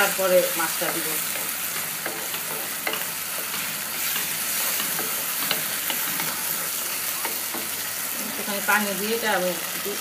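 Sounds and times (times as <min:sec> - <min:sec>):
food sizzling in oil: 0:00.0 - 0:10.0
spatula scraping and tapping pan: 0:00.8 - 0:07.8.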